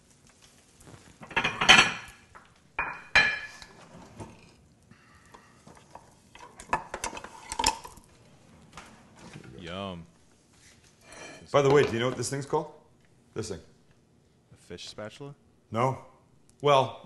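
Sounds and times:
pan and utensils clattering: 0:01.2 - 0:04.5, 0:05.6 - 0:08.0, 0:11.0 - 0:12.3.

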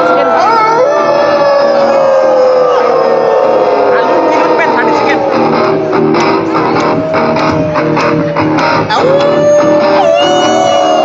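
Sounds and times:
audience whooping and calling: 0:00.0 - 0:11.0.

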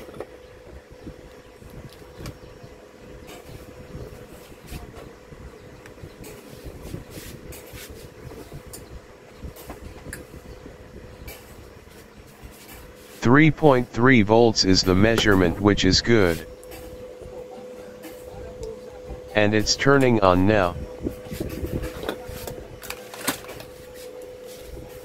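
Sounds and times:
faint constant hum: 0:00.0 - 0:25.0.

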